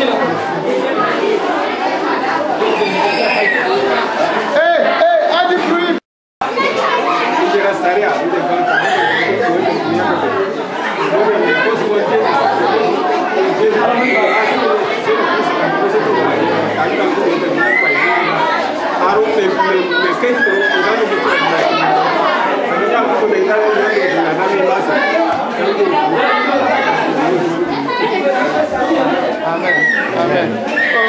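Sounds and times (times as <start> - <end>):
people praying aloud: 0.0 - 31.0.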